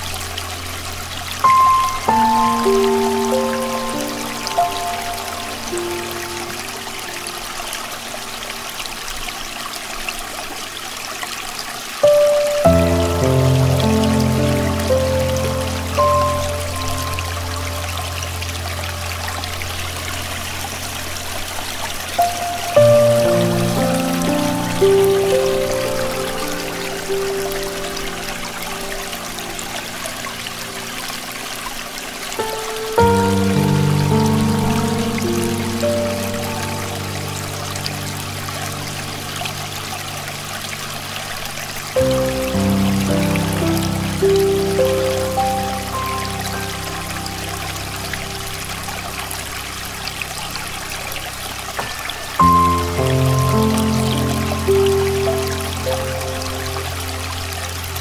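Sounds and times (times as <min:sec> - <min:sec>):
soft solo piano music: 0:00.0 - 0:58.0
stream water running: 0:00.0 - 0:58.0.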